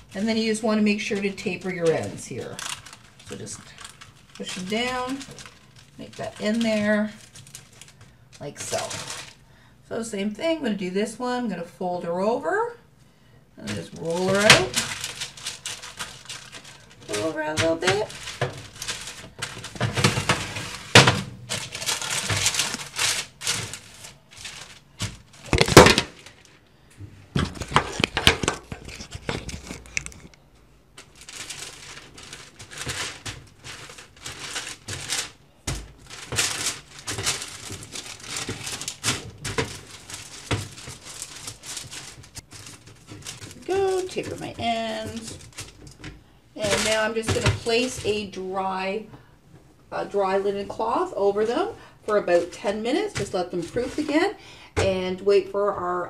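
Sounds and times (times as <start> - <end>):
parchment paper crinkling: 0.0 - 9.7, 13.6 - 26.6, 27.4 - 30.4, 31.0 - 48.8, 50.0 - 54.9.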